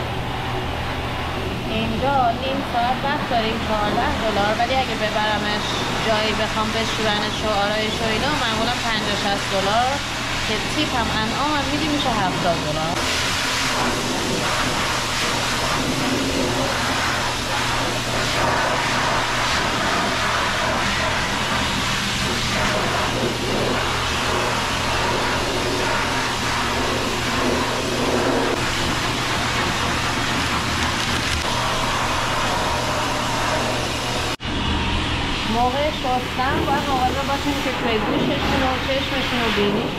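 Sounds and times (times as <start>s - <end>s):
pet dryer blowing air: 0.0s - 39.9s.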